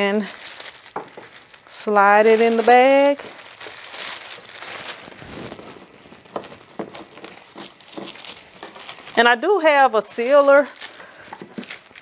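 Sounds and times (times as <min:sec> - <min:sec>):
plastic bag crinkling and rustling: 0:00.0 - 0:12.0
sharp plastic crackles: 0:00.0 - 0:12.0.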